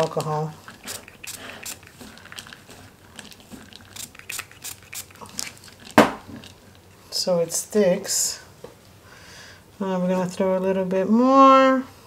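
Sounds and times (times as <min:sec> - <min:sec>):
squishing soap in plastic bowl: 0:00.0 - 0:07.6.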